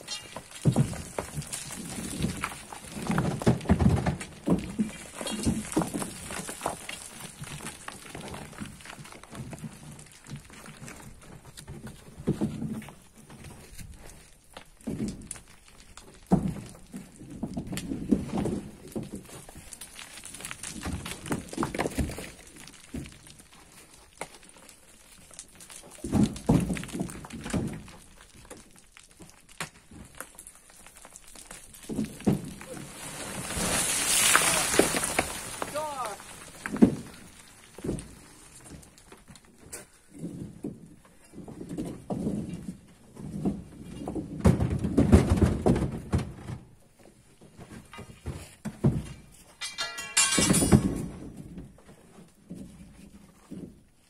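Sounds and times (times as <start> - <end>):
pole thudding and scraping soil: 0.0 - 14.1, 31.3 - 46.7
earth and stones sliding: 0.0 - 54.0.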